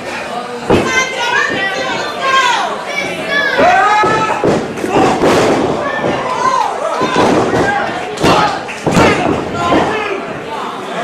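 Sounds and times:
people shouting: 0.8 - 10.3.

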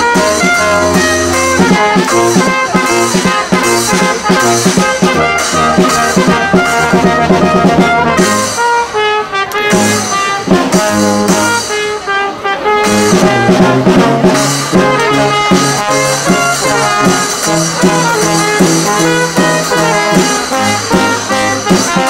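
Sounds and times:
brass band playing a carol: 0.0 - 22.0
low brass bass line: 0.0 - 22.0.

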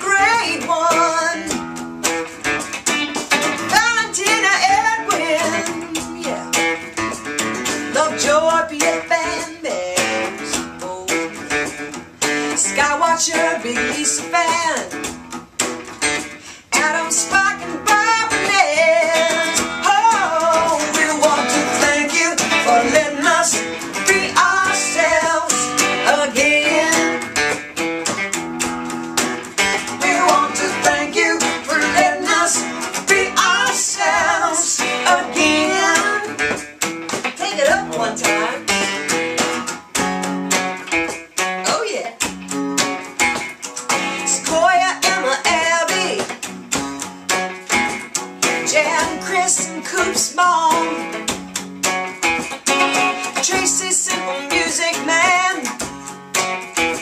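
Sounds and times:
man and woman singing: 0.0 - 1.6, 3.6 - 6.8, 7.6 - 11.8, 12.4 - 15.0, 16.4 - 27.5, 29.6 - 39.1, 44.0 - 46.4, 48.6 - 51.3, 52.9 - 56.0
acoustic guitar strumming: 0.0 - 57.0.

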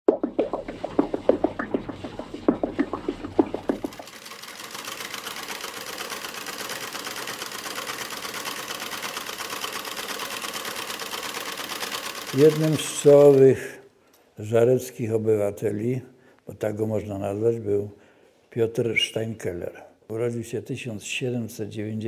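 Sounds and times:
slow rhythmic low thudding: 0.0 - 4.1
sewing machine clatter: 3.0 - 13.6.

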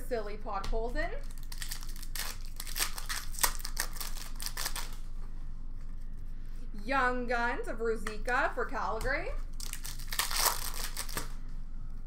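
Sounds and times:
foil wrapper tearing and crinkling: 1.2 - 5.0, 9.5 - 11.4.

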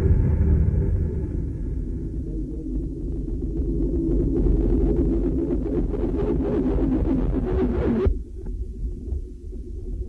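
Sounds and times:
crackling buzzing noise: 0.0 - 10.0
dense low rumble with droning tones: 0.0 - 10.0.

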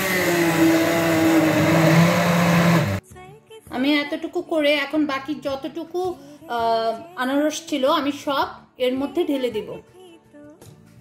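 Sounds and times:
stick blender motor running: 0.0 - 3.0.

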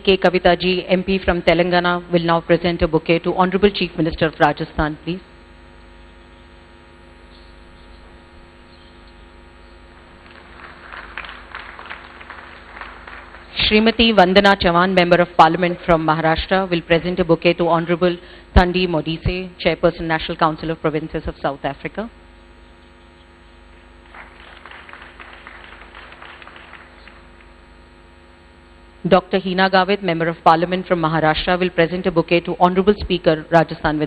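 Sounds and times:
electrical hum: 0.0 - 34.0
light scattered applause: 10.1 - 14.1, 23.9 - 27.6.

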